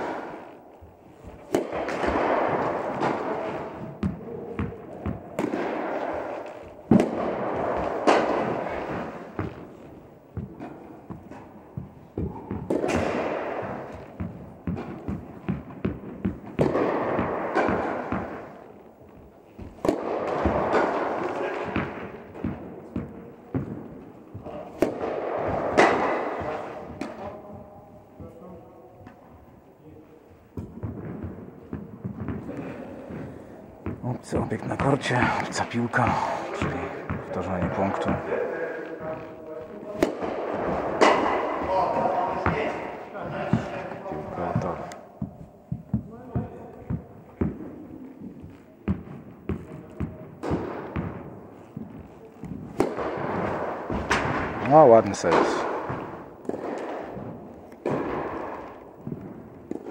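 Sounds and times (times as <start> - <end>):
tennis ball hit by rackets: 0.0 - 27.5, 30.5 - 34.0, 34.7 - 59.9
ball bouncing on court: 1.1 - 29.6, 30.5 - 59.9.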